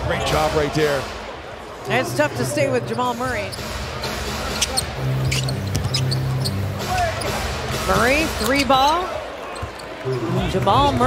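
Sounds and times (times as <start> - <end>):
arena crowd noise: 0.0 - 11.0
basketball bouncing: 5.2 - 6.5, 9.6 - 10.0.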